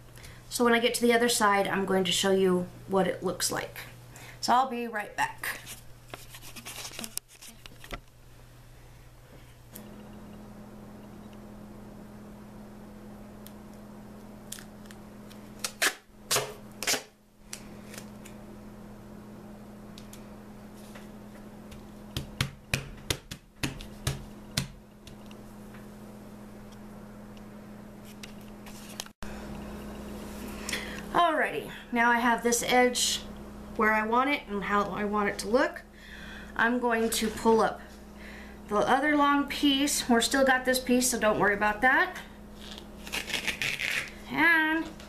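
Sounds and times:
steady low hum: 0.0s - 45.0s
tape being peeled: 5.7s - 8.0s, 14.5s - 18.4s, 42.6s - 44.2s.

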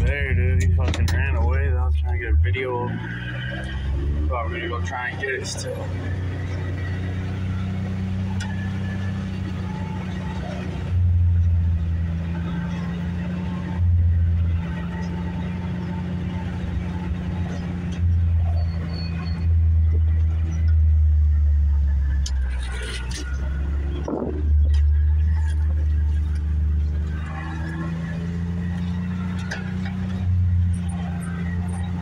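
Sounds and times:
low rumbles: 0.0s - 32.0s
vehicle engine running: 0.0s - 32.0s.

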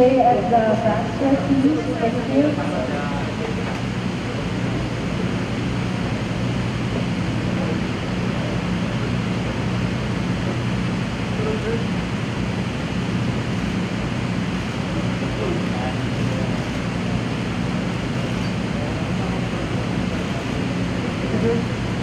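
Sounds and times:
low hum: 0.0s - 22.0s
steady rushing noise: 0.0s - 22.0s.

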